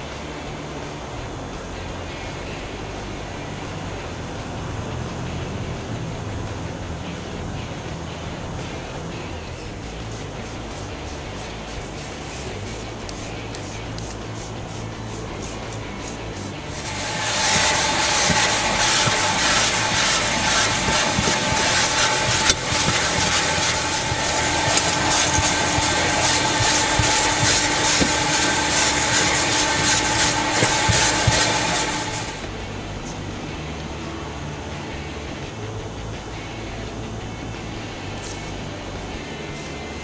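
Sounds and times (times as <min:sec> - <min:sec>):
vacuum cleaner running: 0:10.4 - 0:33.2.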